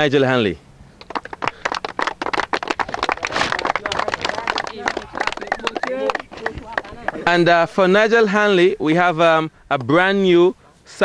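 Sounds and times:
small group clapping: 1.0 - 7.9.

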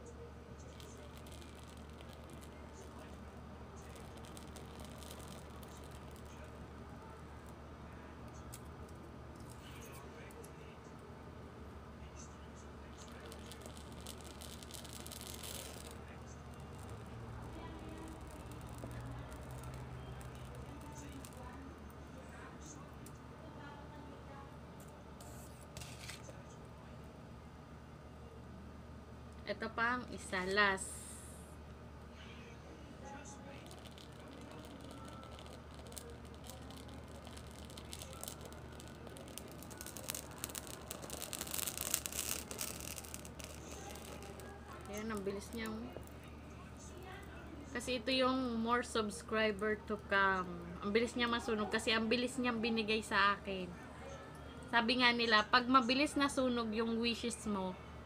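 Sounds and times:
dry leaves crackling as they burn: 0.6 - 7.6, 12.6 - 22.0, 25.2 - 26.3, 33.4 - 52.3.

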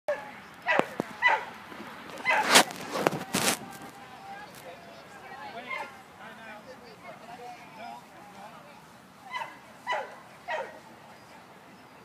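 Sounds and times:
dog barking: 0.1 - 1.5, 2.2 - 2.5, 9.3 - 10.8
outdoor crowd noise: 0.1 - 12.0.

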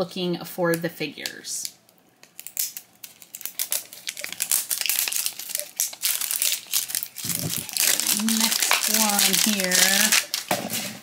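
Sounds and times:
foil wrapper crinkling: 2.2 - 11.0.

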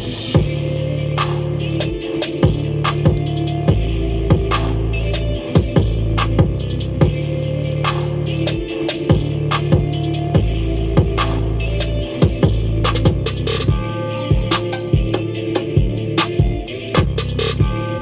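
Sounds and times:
deep bass notes: 0.0 - 18.0.

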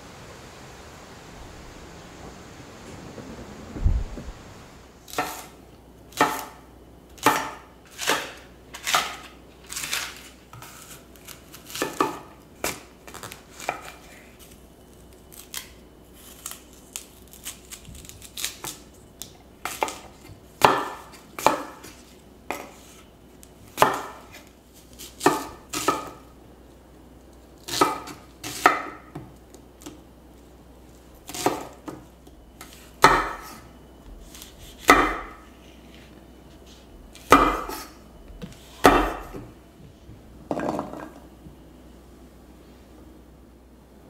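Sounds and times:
knife chopping on wooden board: 6.2 - 6.6, 23.8 - 24.2, 33.0 - 33.6, 34.4 - 35.4, 37.2 - 37.9, 38.8 - 39.5.

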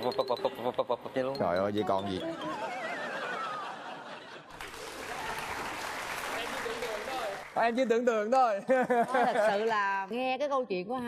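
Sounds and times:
audience applauding: 4.5 - 7.7.

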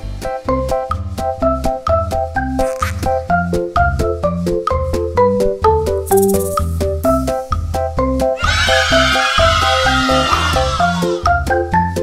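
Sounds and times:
bouncy background music: 0.0 - 12.0.

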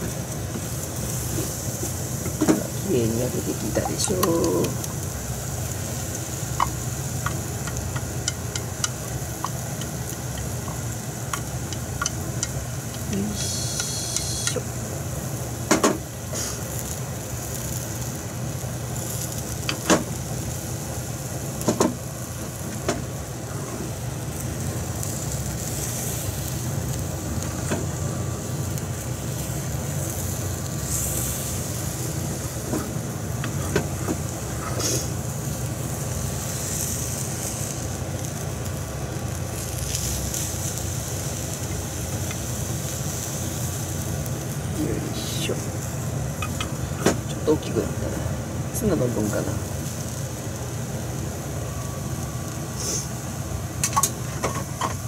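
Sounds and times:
egg sizzling in pan: 0.0 - 55.0
chopsticks tapping pan: 6.6 - 13.0.

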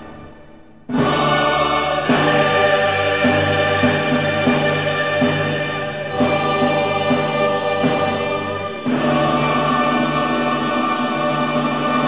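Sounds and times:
choir and orchestra sustained chords: 0.0 - 12.0.

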